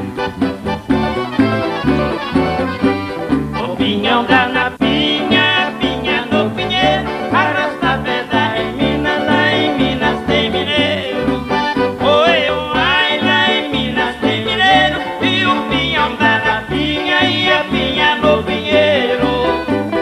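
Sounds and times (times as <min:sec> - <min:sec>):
accordion: 0:00.0 - 0:20.0
acoustic guitars: 0:00.0 - 0:20.0
electric bass line: 0:00.0 - 0:20.0.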